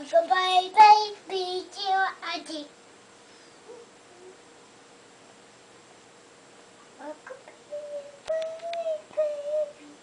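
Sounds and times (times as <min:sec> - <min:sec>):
small child humming: 0:03.6 - 0:04.5, 0:07.0 - 0:10.0.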